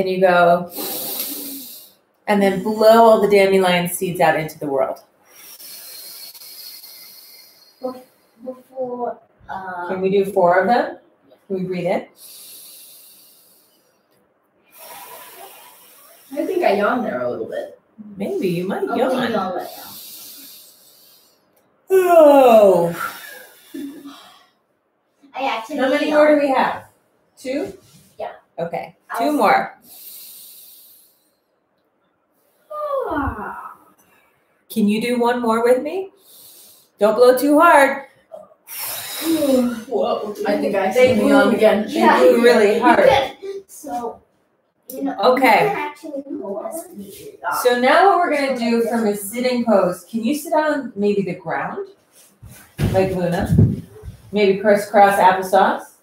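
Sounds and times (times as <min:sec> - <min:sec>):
breath blown through pursed lips: 0:00.7 - 0:02.0, 0:05.2 - 0:08.4, 0:12.2 - 0:14.0, 0:19.7 - 0:21.5, 0:29.8 - 0:31.4, 0:36.2 - 0:37.0, 0:38.7 - 0:39.9.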